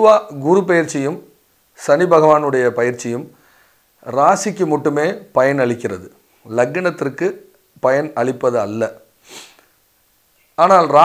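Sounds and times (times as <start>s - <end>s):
man speaking: 0.0s - 3.4s, 4.0s - 9.0s, 10.6s - 11.0s
man breathing in: 3.4s - 3.9s, 9.2s - 9.8s.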